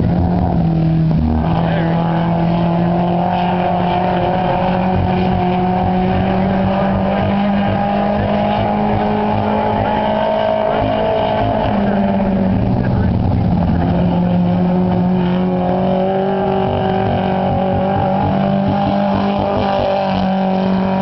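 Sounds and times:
race car engine running hard: 0:00.0 - 0:21.0.

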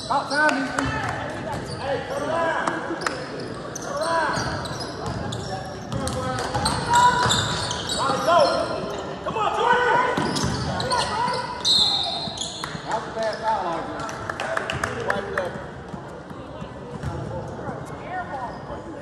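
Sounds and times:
sneakers squeaking on gym floor: 0:00.0 - 0:02.4, 0:03.0 - 0:09.2, 0:10.2 - 0:13.5.

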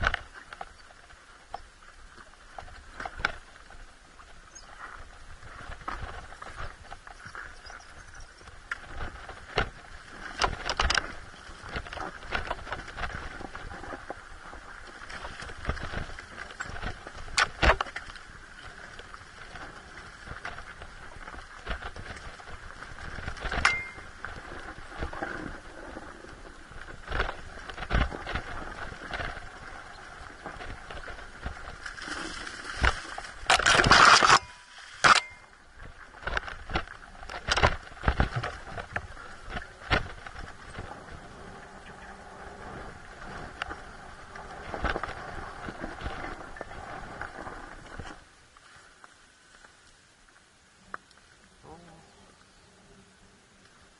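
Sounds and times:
wheels knocking over rocks: 0:00.0 - 0:01.6, 0:04.5 - 0:48.3.

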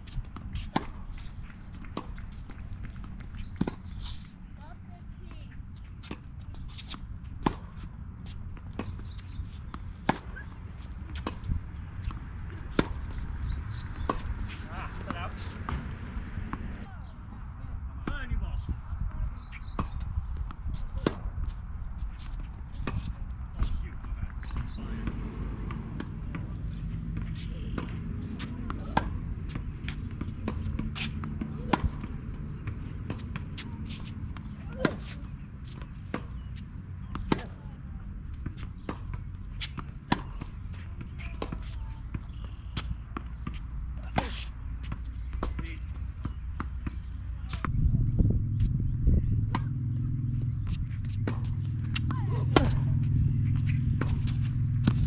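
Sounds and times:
racquets striking tennis ball: 0:00.2 - 0:04.0, 0:06.0 - 0:16.9, 0:19.6 - 0:55.0
ball bouncing on hard court: 0:22.8 - 0:37.6, 0:49.4 - 0:55.0
low background rumble: 0:46.9 - 0:55.0.

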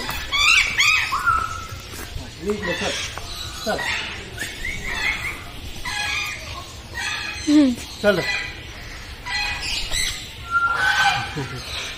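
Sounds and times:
macaw squawking and whistling: 0:09.3 - 0:11.9.

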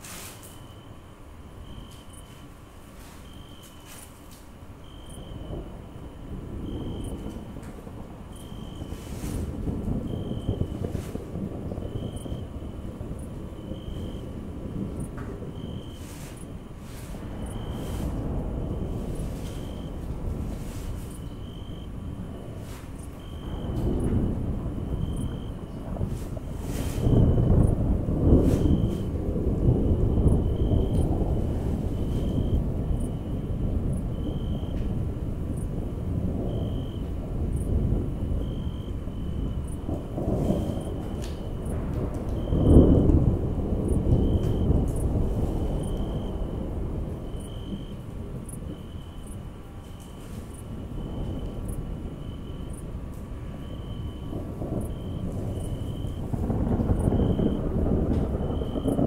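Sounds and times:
rumbling thunder: 0:00.0 - 0:59.0.

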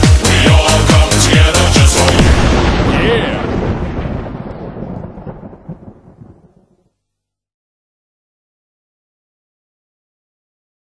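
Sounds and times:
low rumbling with crackle: 0:02.0 - 0:07.0.

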